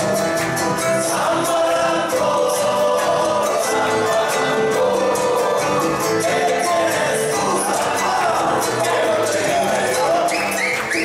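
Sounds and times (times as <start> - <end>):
acoustic guitars: 0.0 - 11.0
percussion: 0.0 - 11.0
voices singing in chorus: 0.8 - 10.9.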